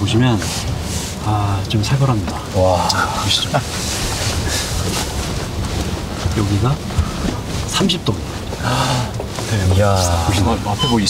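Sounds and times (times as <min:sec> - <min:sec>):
car cabin low rumble: 0:00.0 - 0:11.0.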